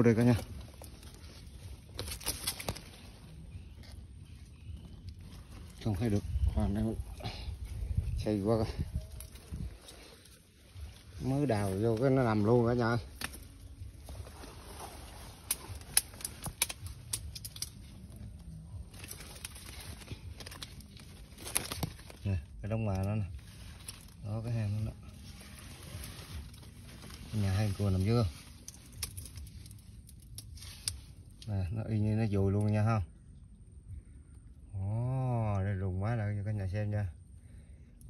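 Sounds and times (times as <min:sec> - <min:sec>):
twigs and leaves crackling: 0:00.0 - 0:38.0.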